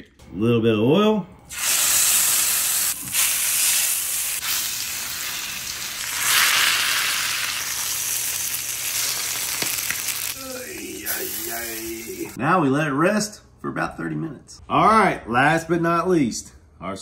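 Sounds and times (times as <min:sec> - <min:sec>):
meat sizzling in a skillet: 0:01.5 - 0:12.4.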